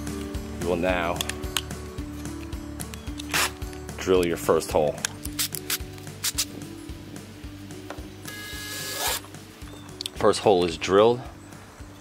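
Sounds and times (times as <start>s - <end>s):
background music: 0.0s - 12.0s
cordless drill boring plastic: 8.5s - 9.2s.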